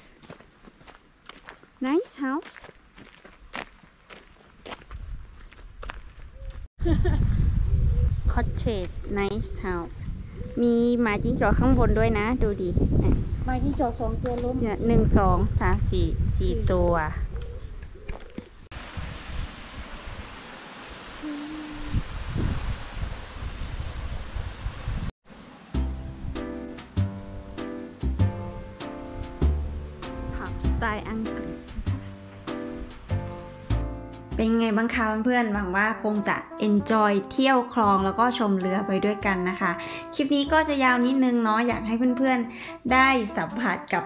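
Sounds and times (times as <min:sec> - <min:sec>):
footsteps on gravel: 0:00.0 - 0:06.7.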